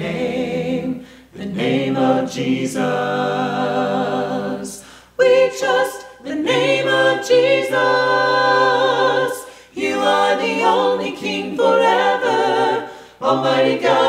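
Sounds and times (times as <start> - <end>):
a cappella singing in harmony: 0.0 - 14.0.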